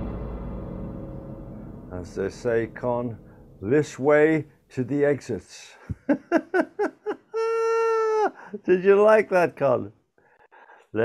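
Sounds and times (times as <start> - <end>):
person laughing: 5.8 - 8.6.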